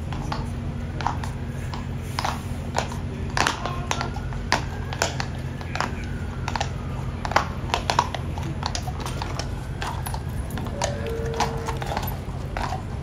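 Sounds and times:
horse hooves on cobblestones: 0.0 - 13.0.

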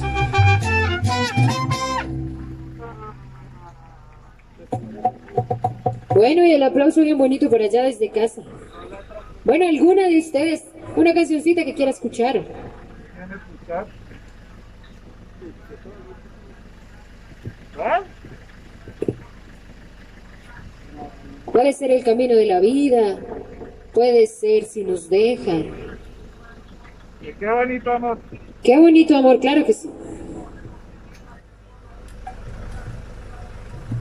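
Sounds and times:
mariachi band final chord: 0.0 - 3.6
bass strings ringing: 0.0 - 31.2
low background hum: 2.0 - 34.0.

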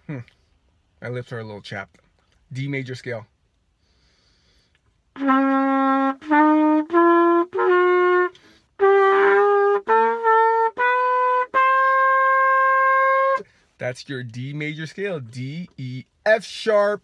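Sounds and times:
trumpet playing a scale: 5.1 - 13.5.

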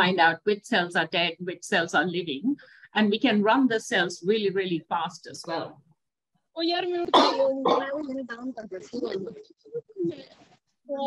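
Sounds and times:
indistinct voice over video call: 0.0 - 11.0.

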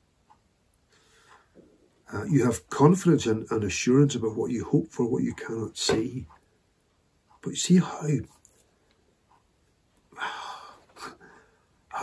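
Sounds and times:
man speaking: 2.1 - 6.3, 7.4 - 8.3.

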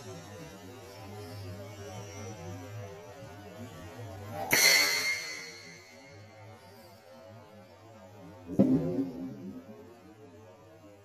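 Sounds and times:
low steady hum: 8.5 - 10.2.

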